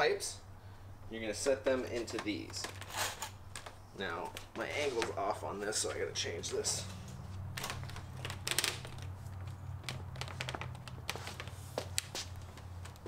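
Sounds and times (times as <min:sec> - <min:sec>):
steady low hum: 0:00.0 - 0:13.0
plastic pipes clicking and knocking: 0:07.6 - 0:13.0.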